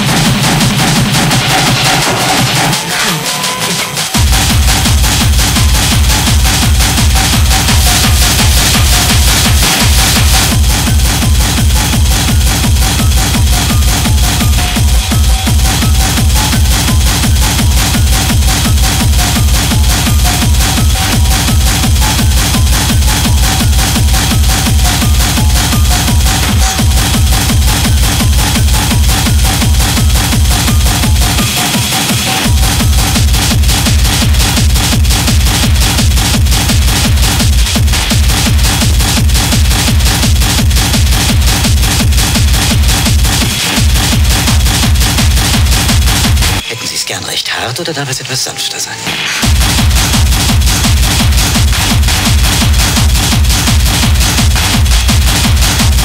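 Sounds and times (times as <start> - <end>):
techno kick drum: 0.0 - 46.6, 49.1 - 56.0
distorted high percussion: 0.0 - 56.0.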